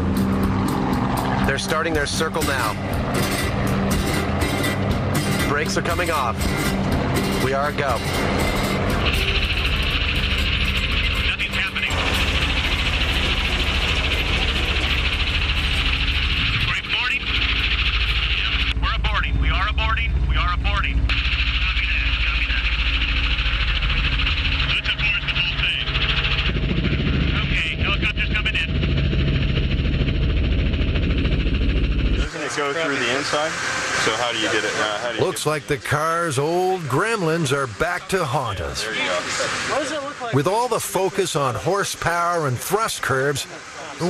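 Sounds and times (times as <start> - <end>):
low engine drone: 0.0 - 44.0.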